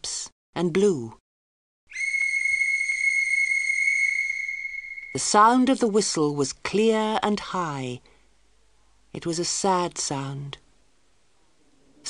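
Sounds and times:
whistle long high note: 0:01.9 - 0:05.7.

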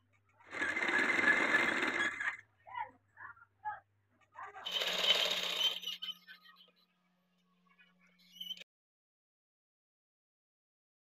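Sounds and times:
sewing machine stitching: 0:00.4 - 0:02.4, 0:04.6 - 0:06.0.

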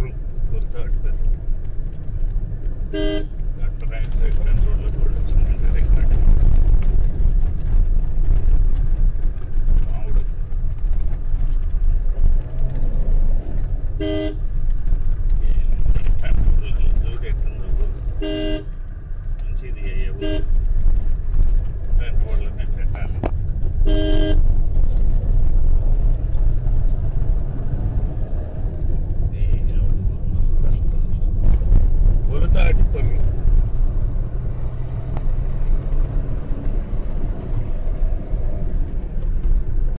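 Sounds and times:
car rumbling on dirt road: 0:00.0 - 0:40.0
vehicle horn honk: 0:02.9 - 0:03.4, 0:14.0 - 0:14.4, 0:18.2 - 0:18.8, 0:20.2 - 0:20.5, 0:23.8 - 0:24.4.

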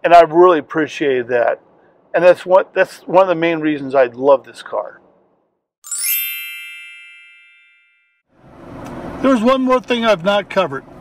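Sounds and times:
bright chime ringing: 0:05.8 - 0:08.3.

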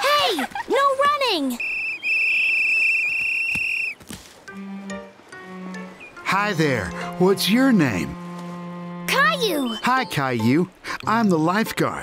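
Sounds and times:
whistle blast: 0:01.6 - 0:04.0.

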